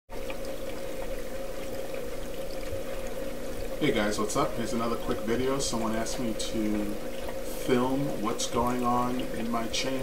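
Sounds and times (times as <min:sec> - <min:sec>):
pump hum: 0:00.1 - 0:10.0
water trickling and pouring: 0:00.1 - 0:10.0.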